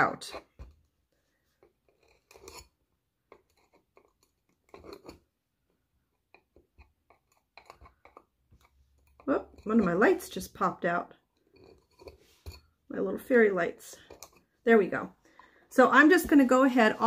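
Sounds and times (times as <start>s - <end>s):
faint scratches and crackles: 0.0s - 5.3s, 6.2s - 10.3s, 11.2s - 12.8s.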